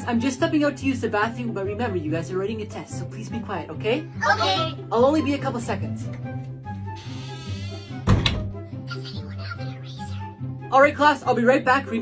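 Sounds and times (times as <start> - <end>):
background music: 0.0 - 12.0
door shutting: 7.0 - 8.5.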